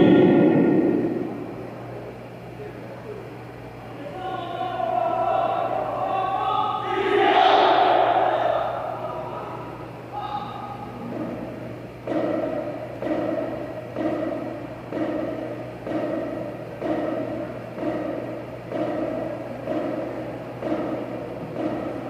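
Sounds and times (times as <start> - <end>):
bass drums beating slowly: 11.0 - 22.0.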